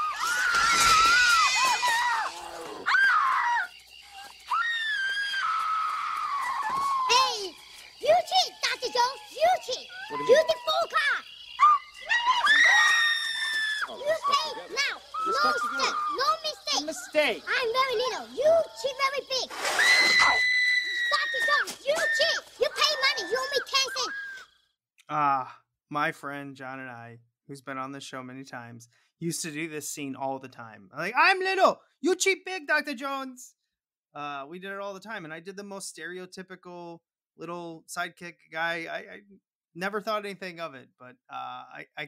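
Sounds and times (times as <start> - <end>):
woman screaming: 9.9 - 16.4, 19.8 - 24.4.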